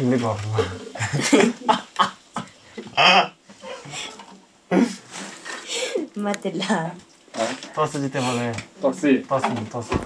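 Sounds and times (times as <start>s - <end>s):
woman and man laughing: 0.8s - 3.2s.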